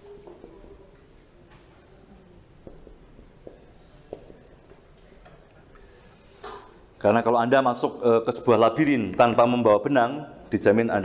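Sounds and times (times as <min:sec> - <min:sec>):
marker writing on whiteboard: 0:00.1 - 0:06.8.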